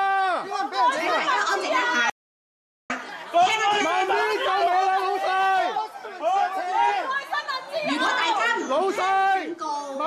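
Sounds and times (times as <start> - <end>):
voices arguing loudly: 0.0 - 2.2, 3.0 - 10.0.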